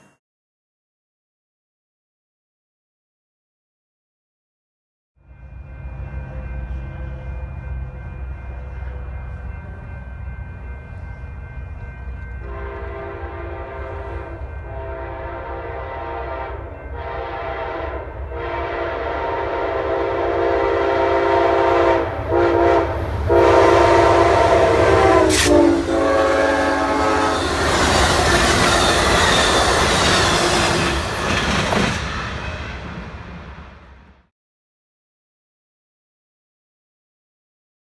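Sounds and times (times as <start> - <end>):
train horn blasts: 12.4 - 29.7
train wheels clattering on rails: 27.3 - 33.6.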